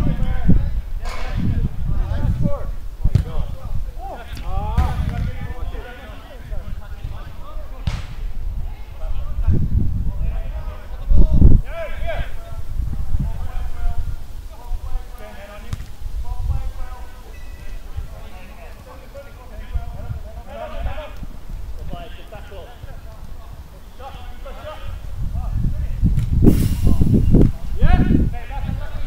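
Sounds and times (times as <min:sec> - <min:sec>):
football being kicked: 0:03.0 - 0:03.5, 0:07.8 - 0:08.3, 0:15.7 - 0:15.9.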